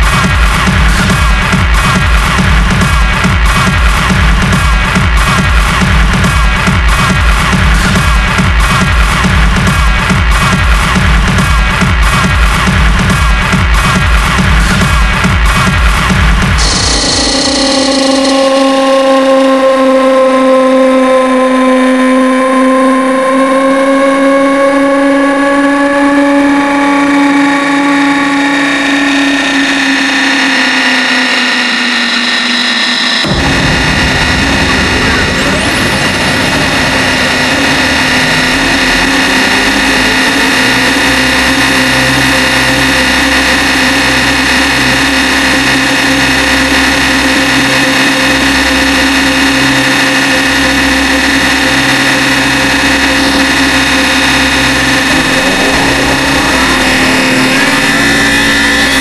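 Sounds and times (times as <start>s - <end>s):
heavy low beat and bass: 0.0s - 59.0s
sustained synth chords: 2.2s - 59.0s.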